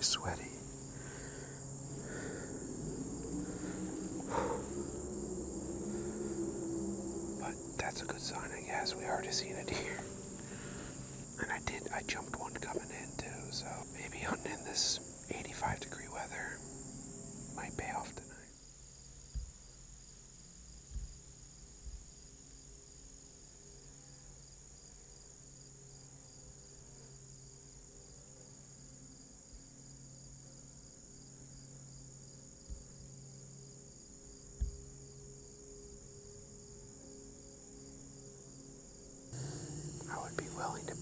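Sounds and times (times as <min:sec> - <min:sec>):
faint low hum: 0:00.0 - 0:18.5, 0:39.4 - 0:41.0
insects chirping: 0:00.0 - 0:41.0.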